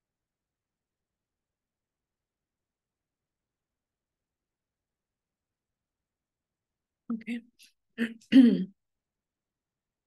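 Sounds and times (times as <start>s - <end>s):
woman clearing her throat: 8.1s - 8.8s.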